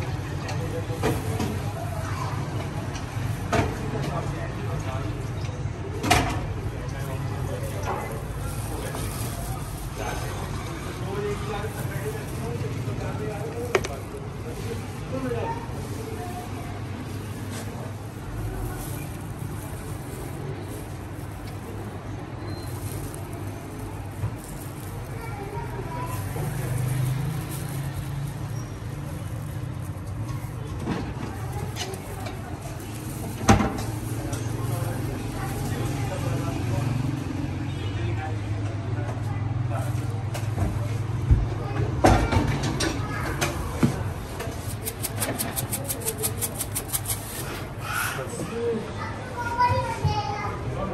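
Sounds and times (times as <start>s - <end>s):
indistinct voices: 41.6s - 50.9s.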